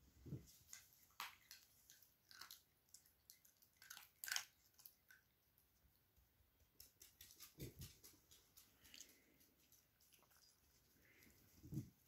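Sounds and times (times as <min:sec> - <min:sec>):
dog crunching dry kibble: 0:00.6 - 0:05.3.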